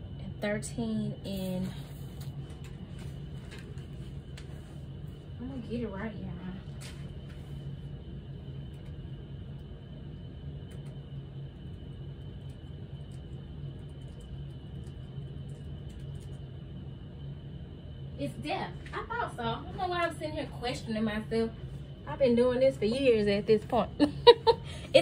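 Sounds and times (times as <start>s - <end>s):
low room hum: 0.0s - 25.0s
thin high whine: 0.0s - 25.0s
woman speaking: 0.2s - 1.8s, 5.4s - 6.7s, 18.2s - 24.3s.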